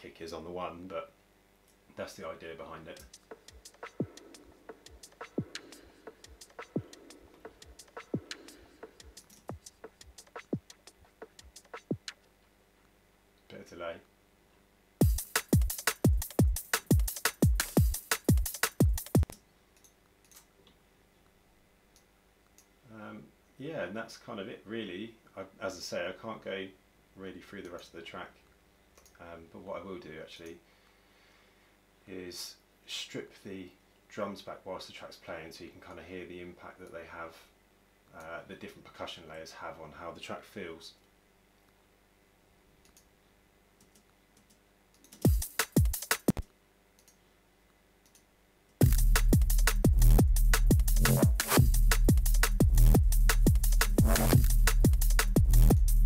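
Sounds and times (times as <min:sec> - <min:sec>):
drum and bass track: 0:03.0 - 0:12.2, 0:15.0 - 0:19.3, 0:45.2 - 0:46.4, 0:48.8 - 0:56.0
faint clicks: 0:42.8 - 0:43.1, 0:46.3 - 0:47.2.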